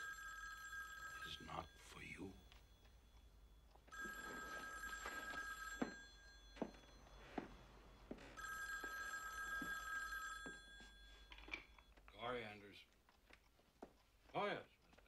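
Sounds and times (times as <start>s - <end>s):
telephone bell ringing: 0.0s - 11.9s.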